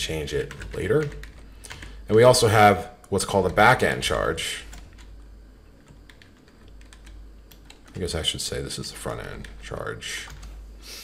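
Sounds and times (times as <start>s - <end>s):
keyboard typing: 0.4s - 2.0s, 3.4s - 8.2s, 9.0s - 10.6s.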